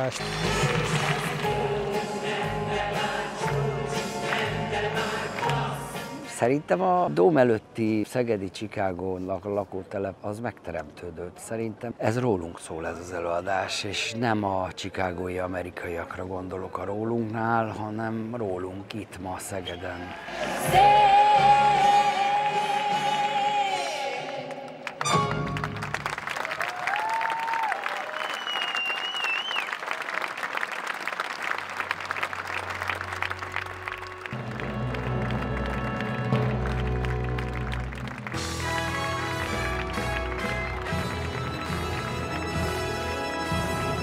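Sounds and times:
audience applauding and cheering: 0.0s - 6.3s, 20.1s - 44.0s
band playing: 0.0s - 7.2s, 25.0s - 26.2s, 33.0s - 44.0s.

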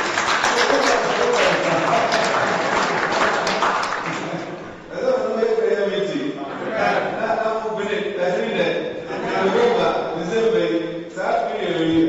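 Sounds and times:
congregation clapping: 0.0s - 4.8s.

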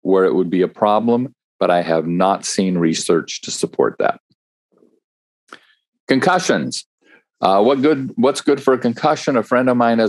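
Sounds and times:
man speaking: 0.0s - 4.2s, 6.1s - 6.8s, 7.4s - 10.0s.

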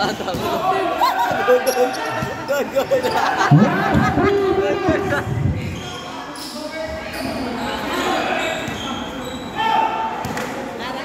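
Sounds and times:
shouts and chatter in a hall: 0.0s - 11.0s.

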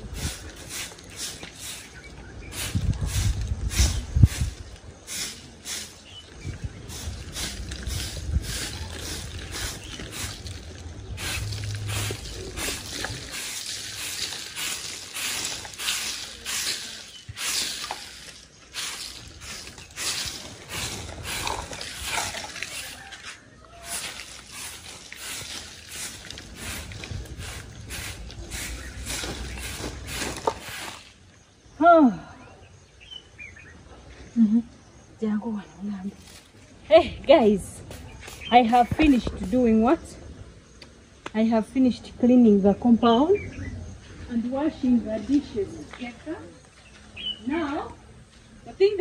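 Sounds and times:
broom sweeping dirt: 0.0s - 31.4s, 36.1s - 36.8s, 37.4s - 39.8s.

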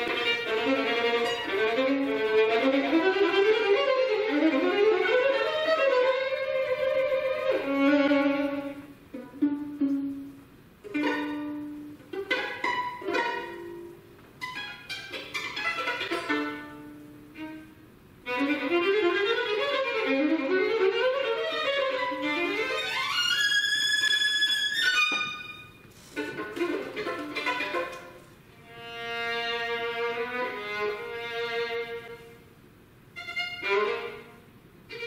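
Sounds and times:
solo violin: 0.0s - 35.0s.

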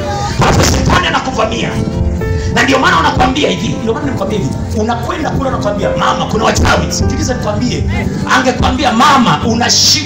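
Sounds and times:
booming bass music thuds: 0.3s - 1.3s
man's amplified voice: 0.4s - 10.0s.

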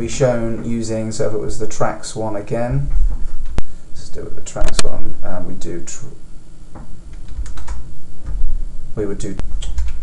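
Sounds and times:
computer keyboard key presses: 7.2s - 7.8s, 9.5s - 10.0s.

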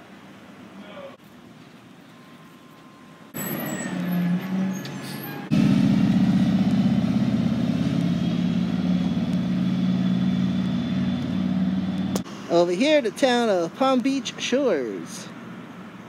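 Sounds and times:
vehicle engine running: 5.5s - 12.3s.

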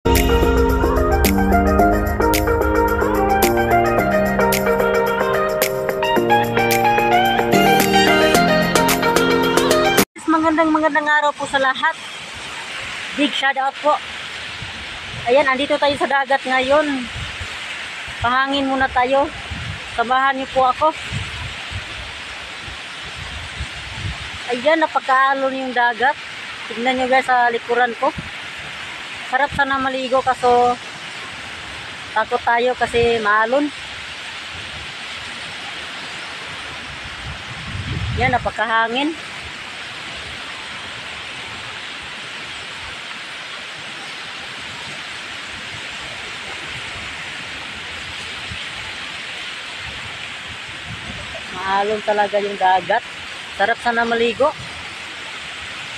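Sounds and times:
wind on microphone: 14.4s - 24.6s, 28.0s - 32.1s, 32.7s - 43.0s, 44.5s - 53.3s, 53.9s - 55.9s
roar of surf: 25.9s - 55.9s.

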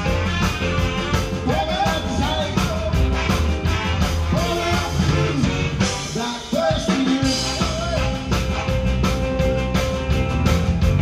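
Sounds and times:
rock band playing: 0.0s - 11.0s
man singing: 1.1s - 8.8s.

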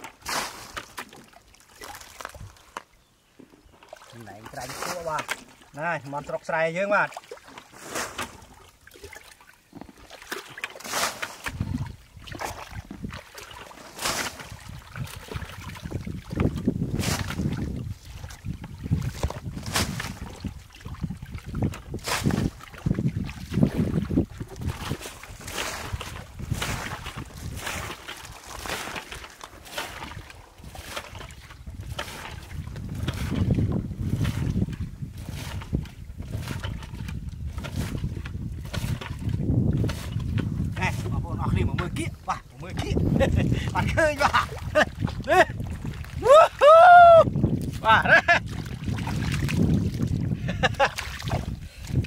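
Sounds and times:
bucket scooping sloshing water: 0.0s - 52.0s
water splashing: 0.0s - 52.0s.

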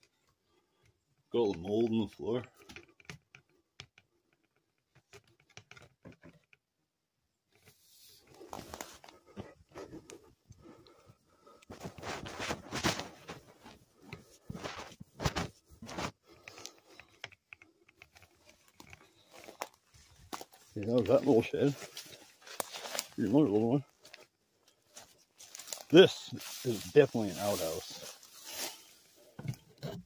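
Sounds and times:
footsteps crunching on dry debris: 11.7s - 16.2s, 18.7s - 29.3s.

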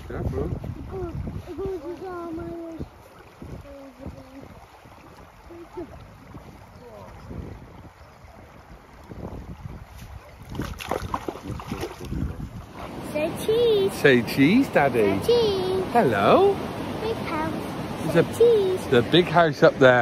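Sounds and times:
small waves washing on shingle: 0.0s - 20.0s
wind buffeting microphone: 0.0s - 20.0s.

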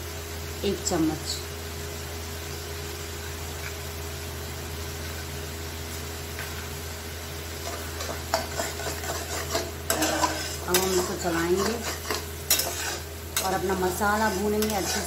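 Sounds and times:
sizzling: 0.0s - 15.0s
steady low hum: 0.0s - 15.0s
metal spatula scraping a pan: 7.6s - 15.0s.

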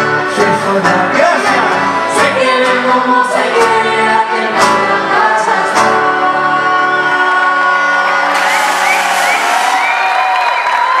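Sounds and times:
folk band playing: 0.0s - 9.8s
audience cheering: 7.7s - 11.0s
whoops: 8.3s - 11.0s.

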